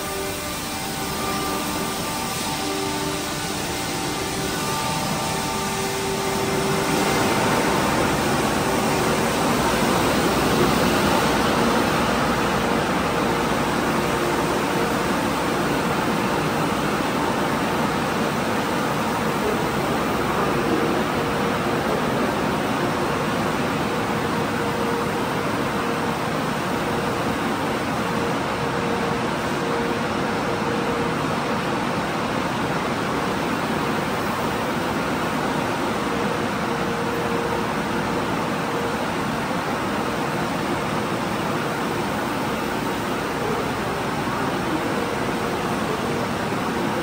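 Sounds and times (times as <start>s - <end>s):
car wash water spray and machinery: 0.0s - 47.0s.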